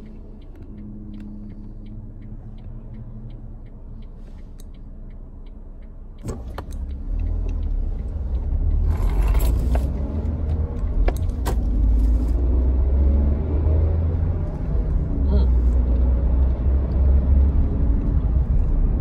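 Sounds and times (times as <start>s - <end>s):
engine and road rumble in car: 0.0s - 19.0s
sharp clicks and knocks: 5.4s - 12.2s.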